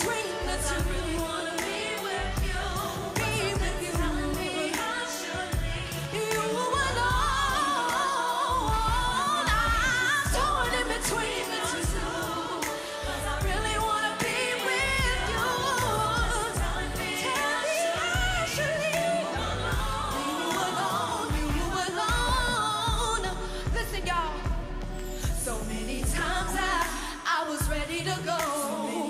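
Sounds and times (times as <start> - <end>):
backing music: 0.0 - 29.0
woman singing into microphone: 0.0 - 29.0.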